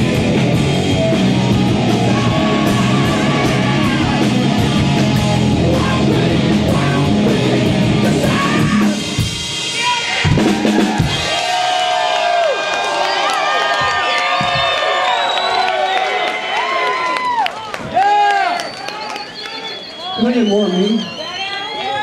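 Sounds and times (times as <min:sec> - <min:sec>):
live rock band playing: 0:00.0 - 0:11.6
crowd cheering and yelling: 0:00.0 - 0:22.0.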